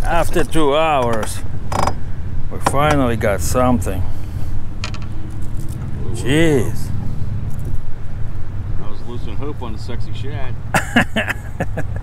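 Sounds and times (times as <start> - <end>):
wind buffeting microphone: 1.6 - 8.9.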